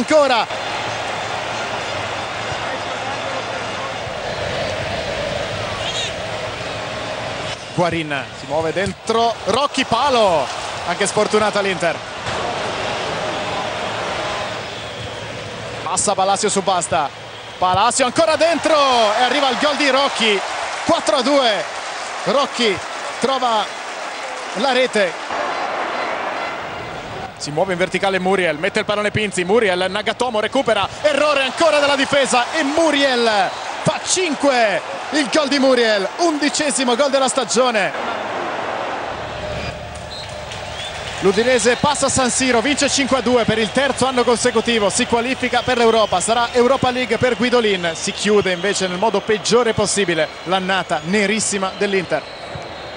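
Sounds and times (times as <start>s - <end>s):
stadium crowd voices: 0.0s - 52.9s.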